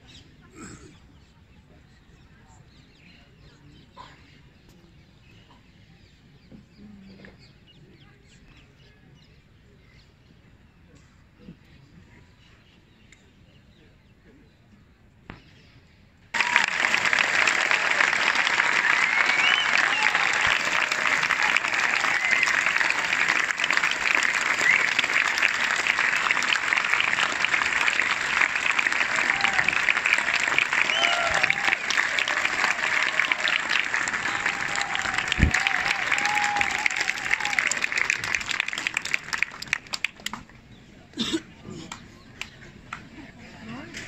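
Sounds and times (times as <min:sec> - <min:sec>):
cheers and calls: 0:16.4 - 0:39.0
audience applauding: 0:16.4 - 0:40.4.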